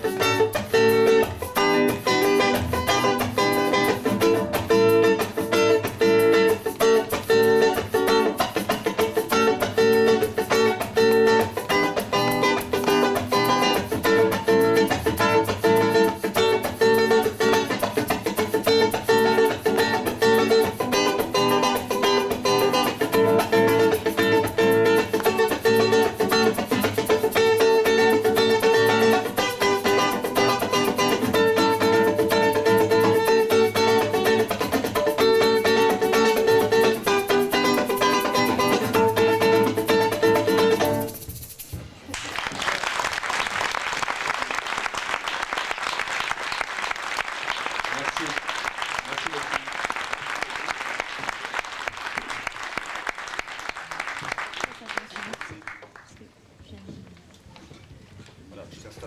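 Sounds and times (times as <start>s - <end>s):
acoustic guitar playing: 0.0s - 41.9s
audience applauding: 42.1s - 56.2s.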